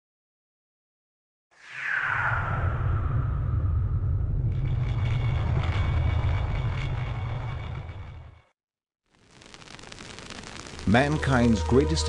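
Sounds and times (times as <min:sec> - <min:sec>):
deep rumble: 0:01.6 - 0:08.4.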